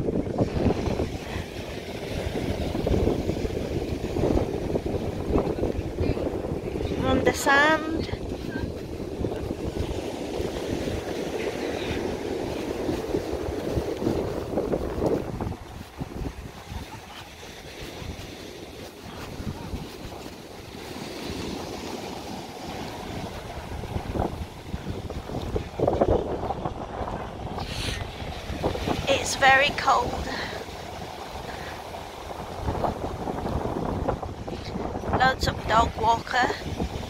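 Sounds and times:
rough surf breaking: 0.0 - 37.0
wind buffeting microphone: 0.0 - 37.0.

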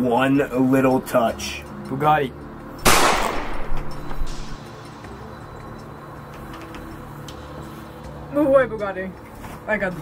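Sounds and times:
loud gunshot with echo: 2.8 - 4.0.

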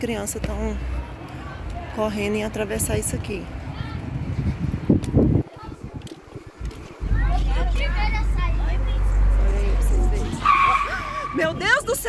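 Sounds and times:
wind rumble on microphone: 2.4 - 12.0
car tyres skidding: 7.5 - 11.9.

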